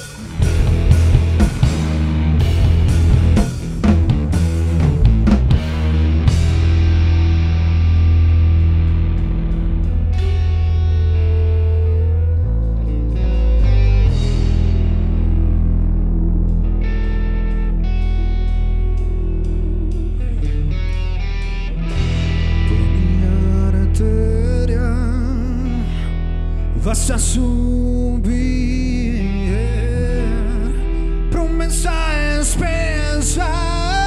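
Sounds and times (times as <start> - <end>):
drum kit hits: 0.0 - 10.7
electric bass line: 0.0 - 34.0
electric guitars: 0.0 - 34.0.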